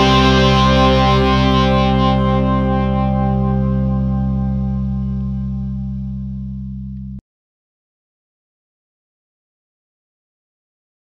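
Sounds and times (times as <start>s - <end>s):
distorted electric guitar chord: 0.0s - 7.2s.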